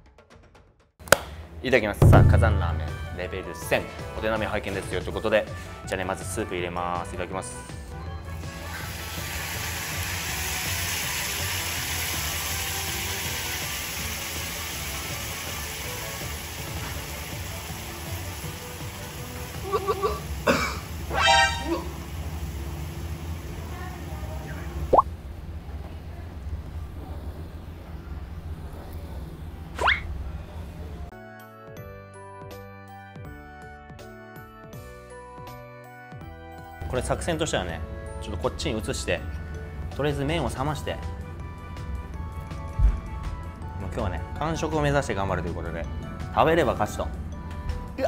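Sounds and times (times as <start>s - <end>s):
soup hissing and sizzling in pot: 8.4s - 25.0s
low background hum: 19.6s - 31.1s
upward-sweeping whistle: 21.1s - 21.8s.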